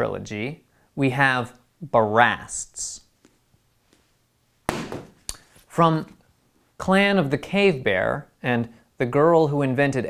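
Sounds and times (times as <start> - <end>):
book knocking down: 4.7 - 5.3.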